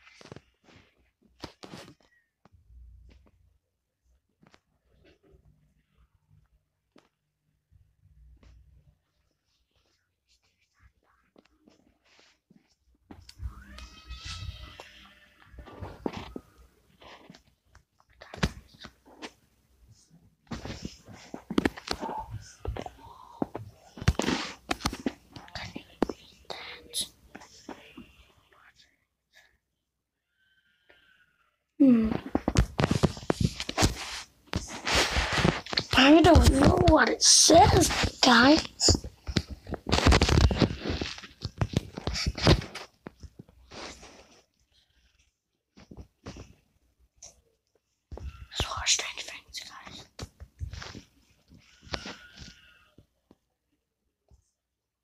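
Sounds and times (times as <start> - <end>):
close breathy whispering: 19.9 - 24.1, 25.3 - 29.6, 48.2 - 50.2.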